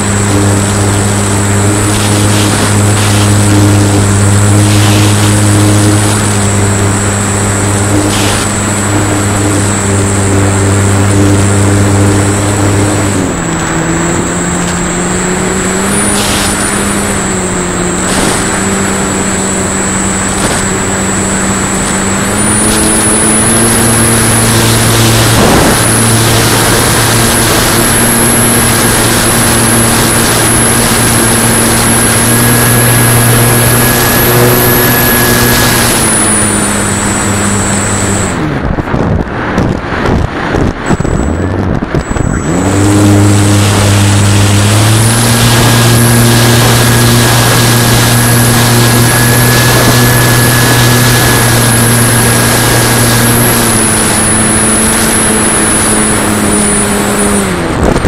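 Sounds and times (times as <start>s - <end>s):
electric motor and propeller buzzing: 0.0s - 58.0s.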